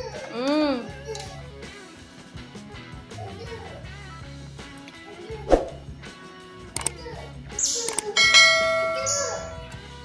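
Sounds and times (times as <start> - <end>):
quick swoosh: 5.5 - 5.8
mouse click: 7.9 - 8.1
bell chime: 8.2 - 9.8.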